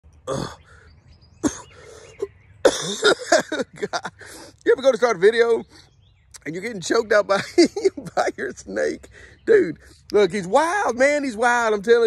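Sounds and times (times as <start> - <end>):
man laughing breathily: 0.6 - 4.6
man coughing: 1.4 - 4.4.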